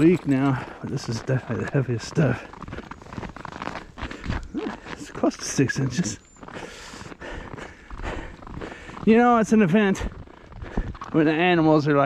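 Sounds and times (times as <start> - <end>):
footsteps crunching in snow: 0.0 - 12.0.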